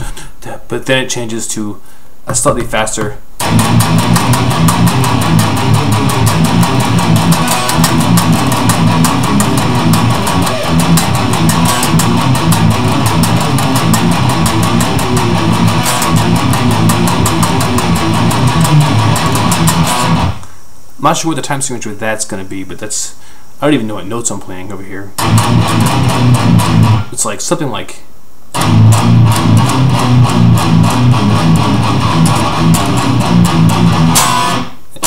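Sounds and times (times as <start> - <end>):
electric guitar metal riff: 2.8 - 20.6, 25.2 - 27.3, 28.5 - 35.0.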